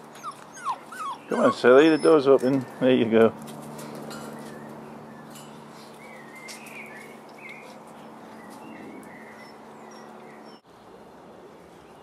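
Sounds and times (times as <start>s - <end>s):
birds chirping: 0.2s - 10.6s.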